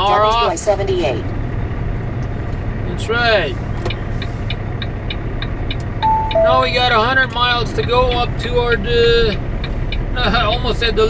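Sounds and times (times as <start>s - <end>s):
diesel engine humming: 0.0s - 11.0s
turn signal ticking: 3.6s - 11.0s.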